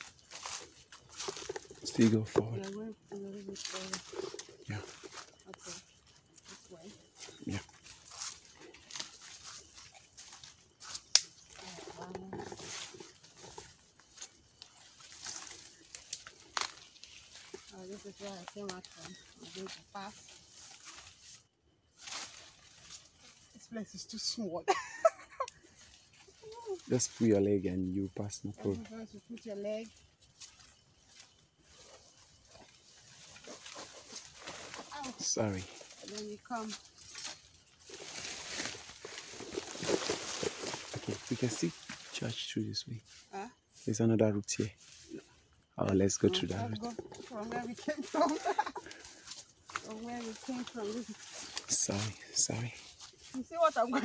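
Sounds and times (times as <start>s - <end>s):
soft footsteps: 0.0s - 2.8s, 3.5s - 11.7s, 36.7s - 42.3s
footsteps through rustling undergrowth: 0.0s - 23.8s, 25.0s - 54.0s.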